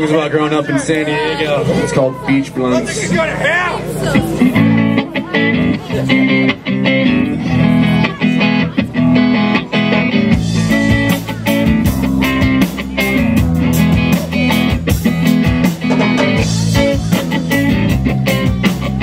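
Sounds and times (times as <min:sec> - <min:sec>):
bass guitar: 0:01.2 - 0:19.0
electric guitar strumming: 0:01.3 - 0:19.0
drums and cymbals: 0:09.9 - 0:19.0.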